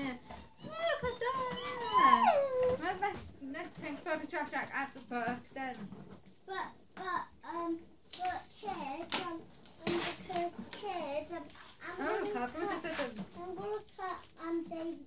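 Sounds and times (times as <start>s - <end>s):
child talking: 6.5s - 15.0s
cardboard box handling noises: 8.1s - 15.0s.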